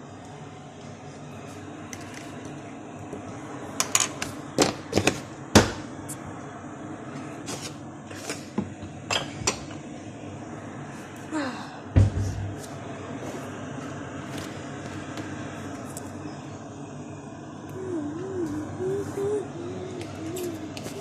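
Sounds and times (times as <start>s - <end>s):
steady background hum: 0.0s - 21.0s
heavy thump on counter: 12.0s - 12.5s.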